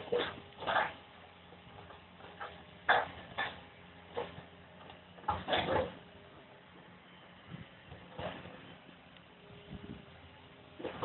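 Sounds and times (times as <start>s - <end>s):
excavator running: 0.0s - 11.0s.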